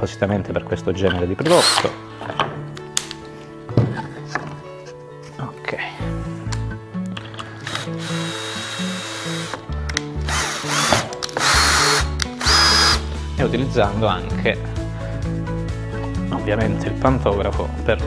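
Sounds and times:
background music: 0:00.0 - 0:18.0
cordless drill whining in bursts: 0:07.6 - 0:09.6, 0:10.2 - 0:13.1.

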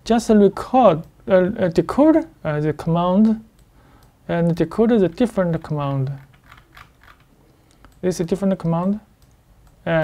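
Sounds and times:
faint light clicks: 0:07.5 - 0:08.0.

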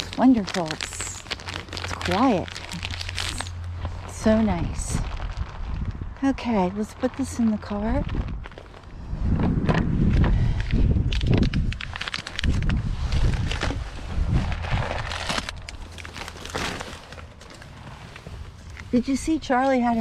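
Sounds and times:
bags rustling: 0:00.0 - 0:20.0
wind buffeting microphone: 0:02.5 - 0:15.6.

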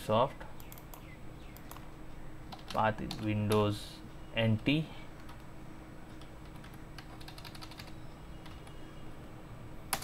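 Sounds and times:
keyboard and mouse clicking: 0:00.6 - 0:01.9, 0:02.5 - 0:03.7, 0:06.1 - 0:08.8.

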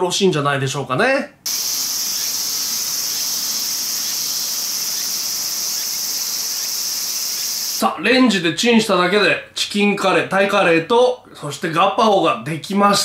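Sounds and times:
insects singing in chorus: 0:01.5 - 0:07.8.

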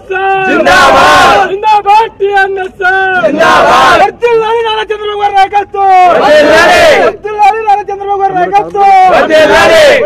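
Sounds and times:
shouting bursts: 0:00.0 - 0:10.0.

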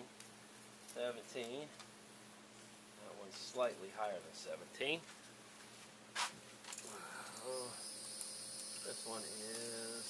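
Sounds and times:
insects droning: 0:06.7 - 0:10.0
man humming: 0:06.9 - 0:07.8.

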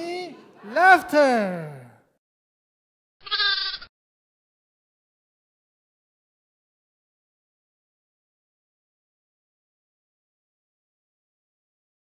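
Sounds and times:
animal bleat: 0:03.2 - 0:03.9.

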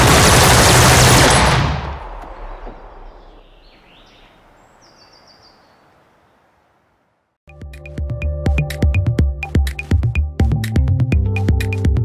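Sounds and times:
automatic rifle fire: 0:00.0 - 0:03.0
gunfire echo: 0:00.0 - 0:03.5.

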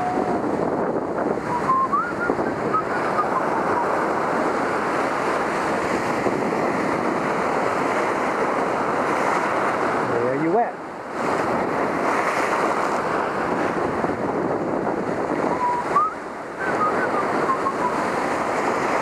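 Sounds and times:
surf breaking on rocks: 0:00.0 - 0:19.0
wind buffeting microphone: 0:00.0 - 0:19.0.

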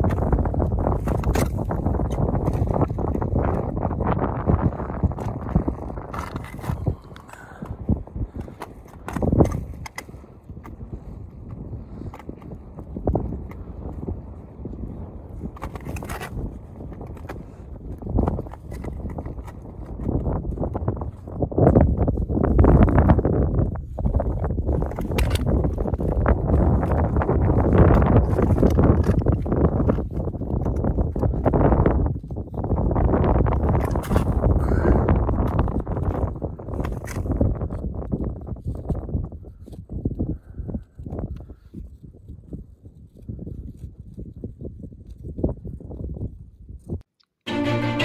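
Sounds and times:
footsteps on snow and rock: 0:00.0 - 0:39.6
wind buffeting microphone: 0:00.0 - 0:47.1.

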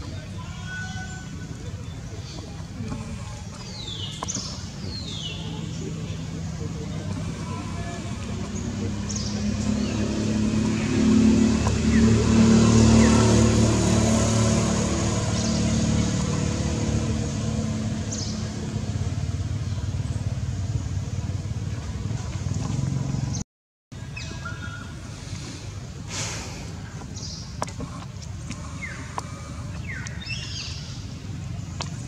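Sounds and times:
vehicle engine passing by: 0:03.7 - 0:23.4.

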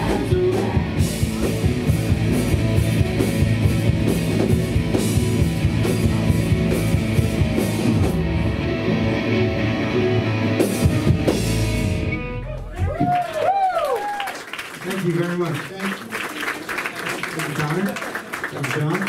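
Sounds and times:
punk band playing live: 0:00.0 - 0:13.2.

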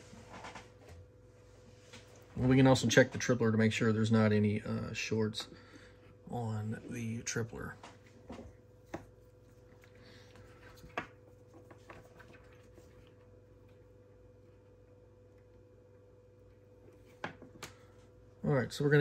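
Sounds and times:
faint steady hum: 0:00.0 - 0:19.0.

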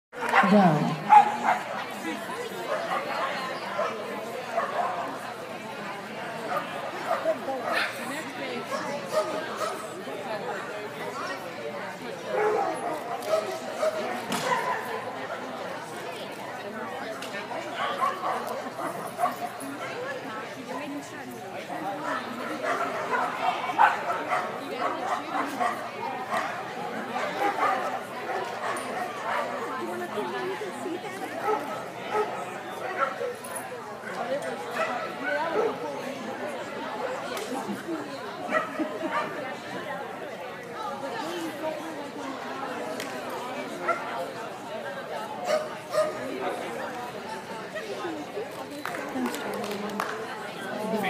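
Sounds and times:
indistinct chatter of voices: 0:00.1 - 0:51.0
people talking: 0:00.2 - 0:51.0
dog barking: 0:01.1 - 0:01.6.

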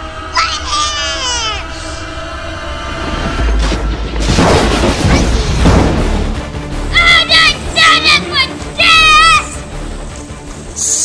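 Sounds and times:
background music: 0:00.0 - 0:11.0
young child yelling: 0:00.4 - 0:01.8, 0:06.9 - 0:09.7.

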